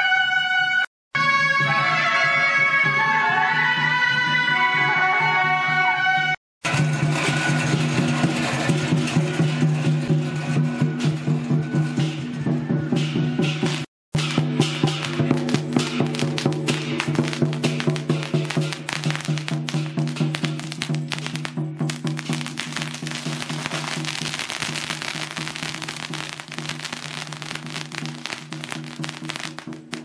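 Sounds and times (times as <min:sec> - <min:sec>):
firecrackers crackling rapidly: 0:13.4 - 0:30.0.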